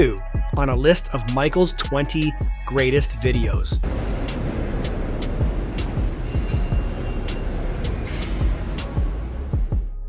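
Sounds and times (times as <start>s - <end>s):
electronic music with steady beat: 0.0s - 10.0s
dense rumbling noise: 3.8s - 9.9s.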